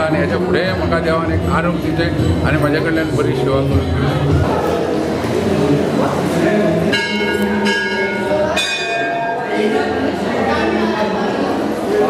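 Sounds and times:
temple bell ringing: 6.8s - 10.1s.

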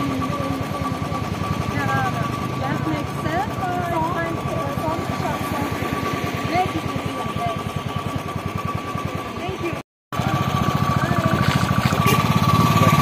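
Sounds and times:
motorcycle engine idling: 0.0s - 13.0s
people's voices: 0.0s - 13.0s.

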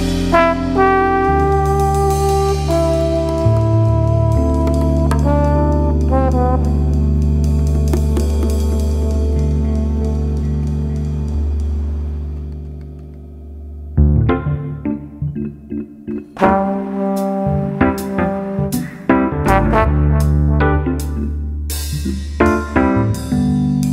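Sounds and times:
lounge jazz: 0.0s - 13.3s, 14.0s - 23.9s.

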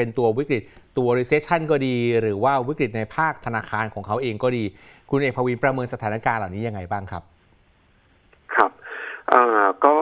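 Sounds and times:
man speaking over telephone: 8.5s - 10.0s.

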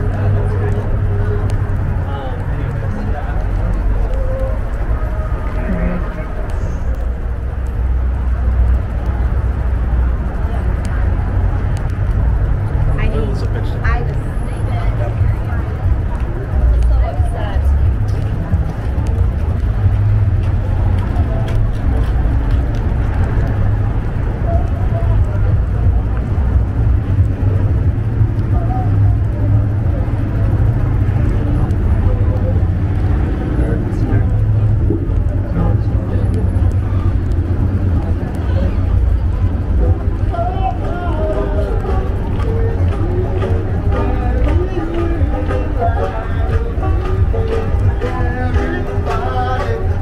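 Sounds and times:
passers-by talking: 0.0s - 50.0s
road traffic rumble: 0.0s - 50.0s.

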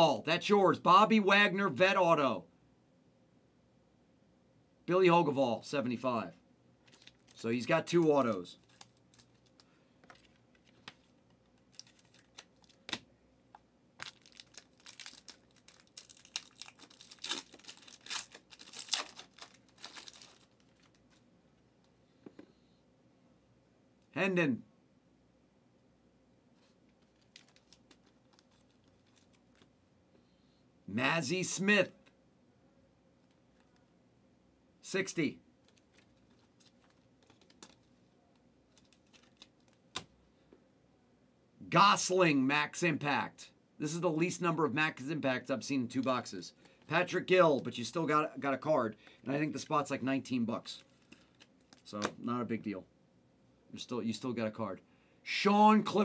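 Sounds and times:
plastic packaging crinkling: 6.8s - 13.0s, 14.0s - 21.2s, 26.9s - 29.8s, 35.6s - 37.9s, 38.7s - 40.0s.

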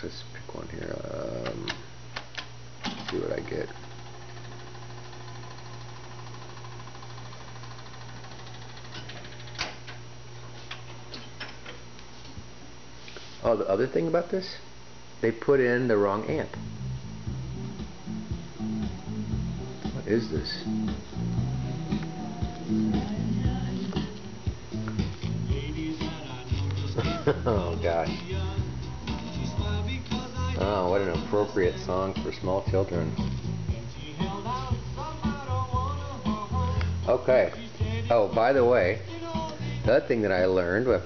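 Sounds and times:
mechanism clicks: 1.4s - 10.0s
jukebox mechanism motor whir: 2.8s - 10.0s
low hum: 16.2s - 38.3s
jukebox playing a song: 16.5s - 41.0s.

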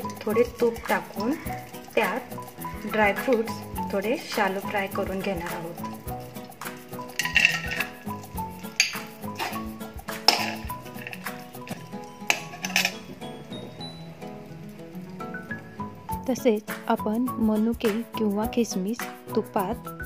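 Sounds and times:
instrumental music: 0.0s - 20.0s
metal spatula scraping a pan: 6.8s - 13.2s.

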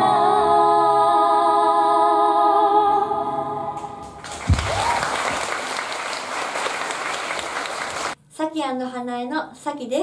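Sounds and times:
two women singing: 0.0s - 4.2s
audience applause: 4.0s - 8.2s.

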